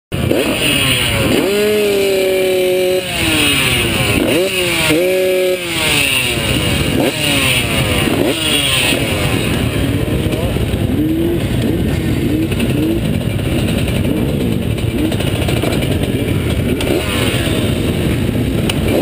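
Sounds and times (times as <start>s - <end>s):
motocross bikes revving: 0.1s - 19.0s.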